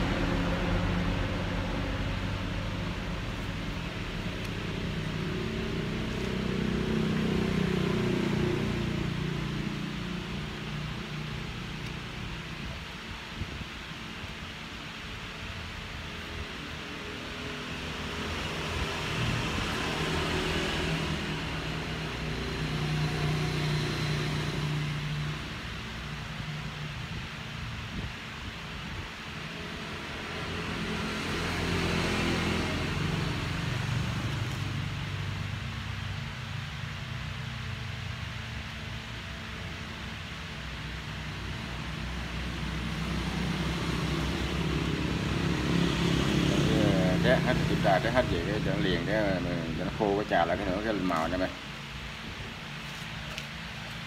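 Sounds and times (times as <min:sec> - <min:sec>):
steady background hum: 0:00.0 - 0:07.8
passing motor traffic: 0:00.0 - 0:54.0.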